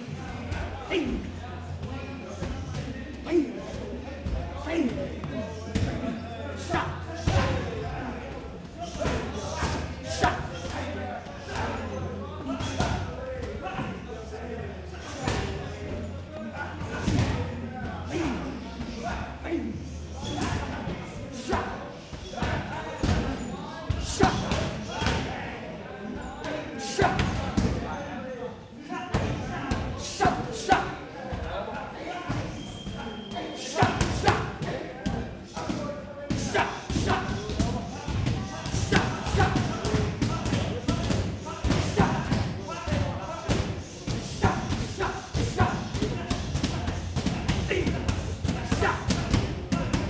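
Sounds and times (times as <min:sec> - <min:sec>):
voices: 0:00.0 - 0:50.0.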